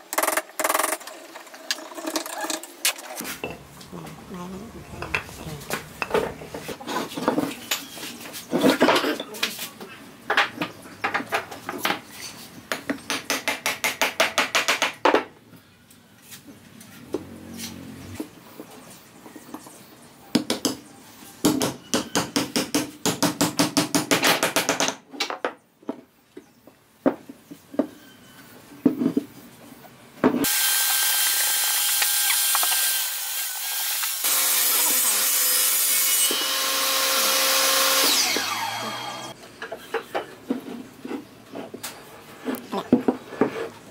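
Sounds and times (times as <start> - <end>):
woodworking power tool running: 30.5 - 39.3.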